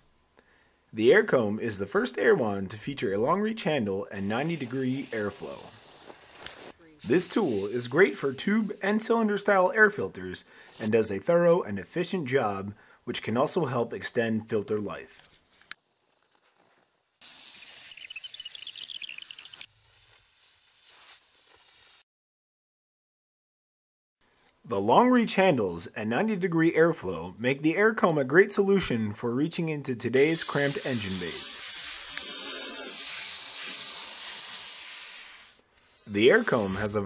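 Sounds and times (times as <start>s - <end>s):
air blow gun hissing: 4.2s - 9.4s, 10.5s - 11.0s, 19.3s - 22.0s, 30.2s - 35.6s.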